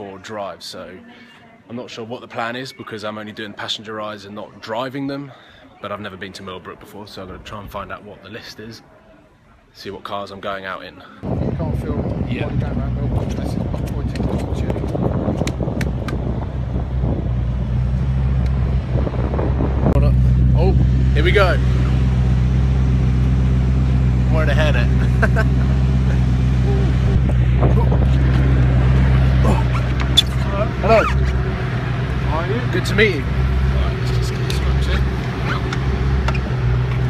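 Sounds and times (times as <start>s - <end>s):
car engine idling: 14.8s - 37.0s.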